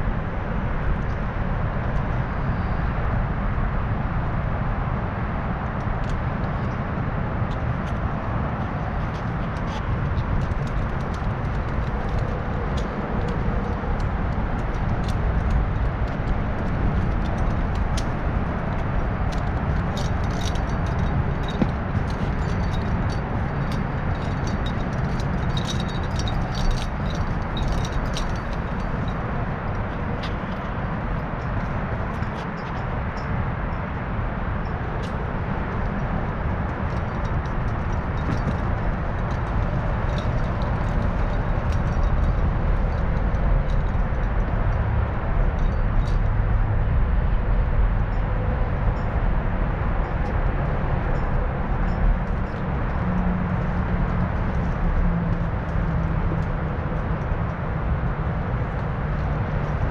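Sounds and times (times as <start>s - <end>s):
low outdoor rumble: 0.0s - 59.9s
metal climbing hardware clinking: 7.4s - 33.9s, 34.6s - 44.6s.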